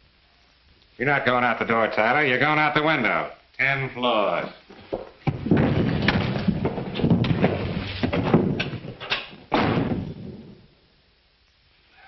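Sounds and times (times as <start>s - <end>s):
thuds blows and scuffling: 4.7s - 10.7s
heavy thump: 5.2s - 10.7s.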